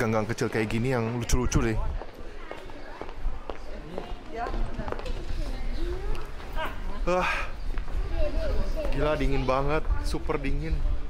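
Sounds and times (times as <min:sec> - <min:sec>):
footsteps on cobblestones: 0:00.0 - 0:06.6, 0:07.6 - 0:09.1
faint voices of people: 0:00.0 - 0:11.0.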